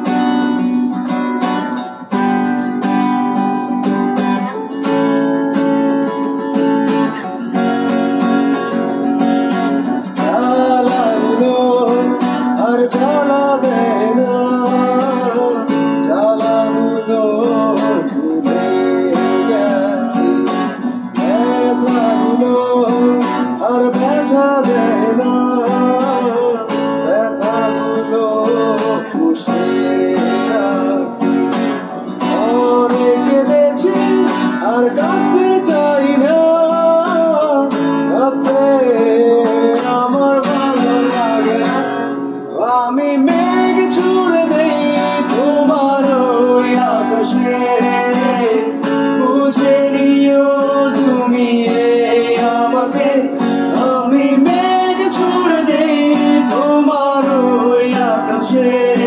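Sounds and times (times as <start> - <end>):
acoustic guitar strumming: 0.0 - 59.0
man singing: 3.6 - 59.0.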